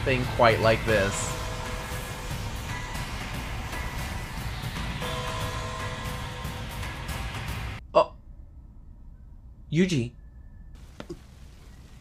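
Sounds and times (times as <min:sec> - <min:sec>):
soundtrack music: 0:00.0 - 0:07.8
low rumble: 0:00.0 - 0:12.0.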